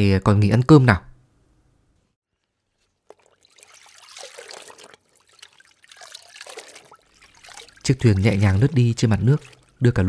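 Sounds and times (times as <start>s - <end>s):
oar splashing through water: 2.3s - 10.0s.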